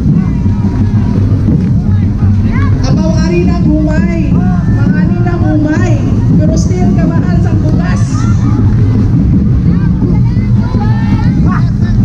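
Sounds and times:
street-dance music with heavy percussion: 0.0s - 12.0s
voices calling out or chanting: 0.0s - 12.0s.

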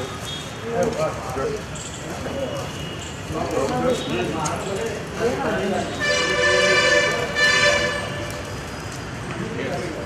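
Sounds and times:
people talking: 0.0s - 8.0s, 9.2s - 10.0s.

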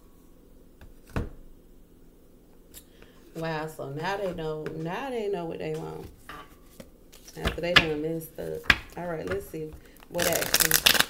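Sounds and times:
person speaking: 3.3s - 6.2s, 7.2s - 11.0s.

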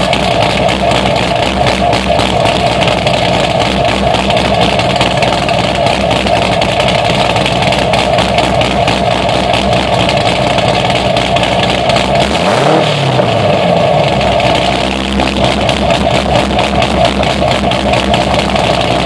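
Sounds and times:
car engine idling: 0.0s - 19.0s
engine revving: 0.0s - 19.0s.

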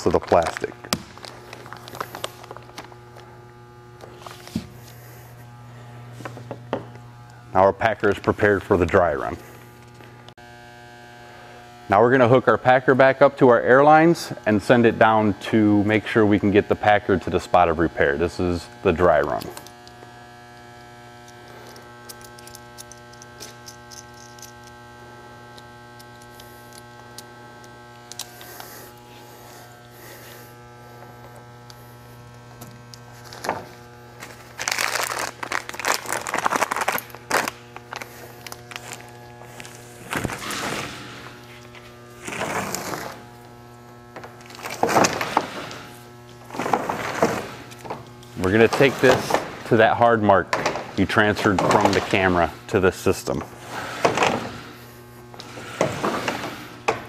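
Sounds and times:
buzzing electrical hum: 0.0s - 57.0s.

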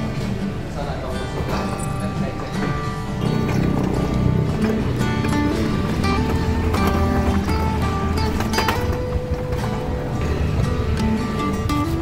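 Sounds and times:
instrumental music held notes: 0.0s - 12.0s.

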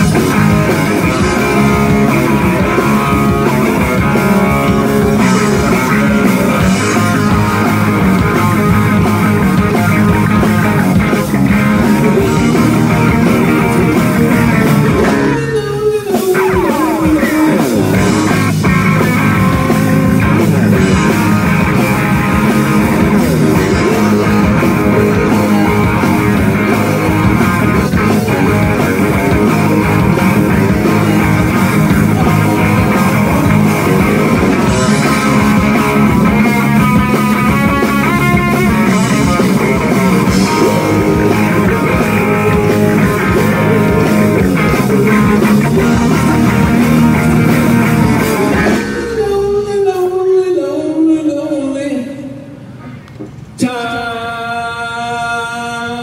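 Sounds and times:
live rock band playing: 0.0s - 50.2s.

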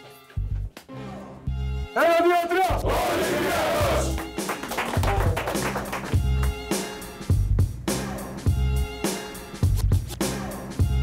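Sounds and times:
many voices shouting together: 2.8s - 4.2s
background music with pulsing bass: 2.8s - 11.0s.

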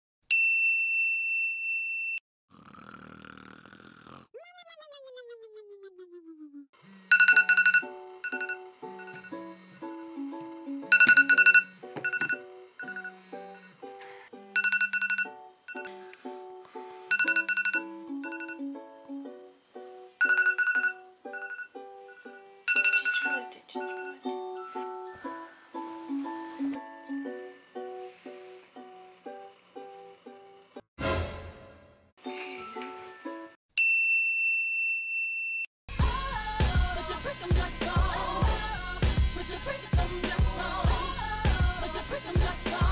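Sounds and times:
bell-like ding: 0.3s - 2.2s, 33.8s - 35.7s
high ringtone-like trilling: 7.1s - 9.4s, 10.9s - 13.2s, 17.1s - 18.7s, 20.2s - 24.8s
upbeat plucked background music: 7.2s - 29.0s, 35.9s - 42.9s
pop music with singing: 35.9s - 42.9s.

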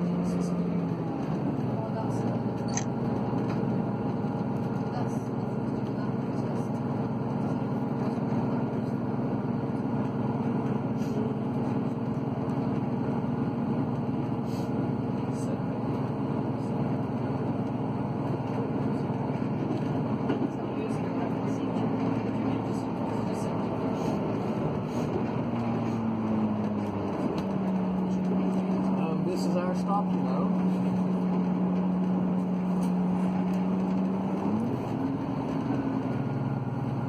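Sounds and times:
train rumble on steel bridge: 0.0s - 37.0s.

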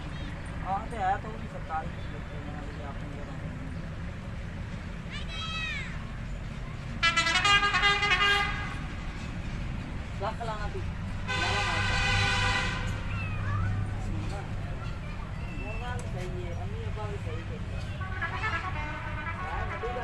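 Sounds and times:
vehicle horn honking: 7.0s - 9.0s, 11.2s - 13.1s, 17.8s - 20.0s.

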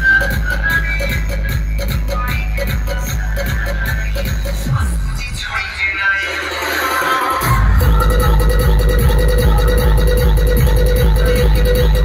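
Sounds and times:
loud electronic dance music: 0.0s - 12.0s.

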